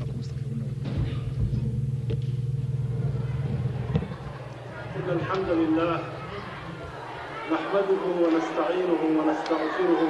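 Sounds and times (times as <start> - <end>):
steady low hum: 0.0 - 9.5.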